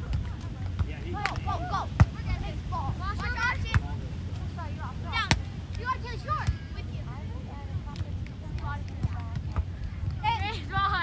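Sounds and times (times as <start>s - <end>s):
hands slapping volleyball: 0.0s - 1.5s
low outdoor rumble: 0.0s - 11.0s.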